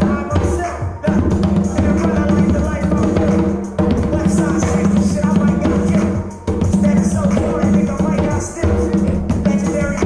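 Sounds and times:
conga drums played by hand: 0:00.0 - 0:10.0
hip-hop backing track: 0:00.0 - 0:10.0.

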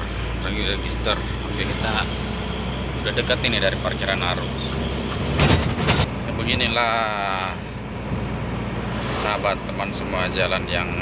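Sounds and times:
truck engine and road noise: 0:00.0 - 0:11.0.

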